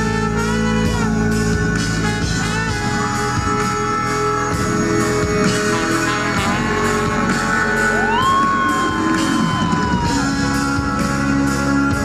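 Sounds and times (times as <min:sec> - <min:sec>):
drums with cymbal hits: 0:00.0 - 0:12.0.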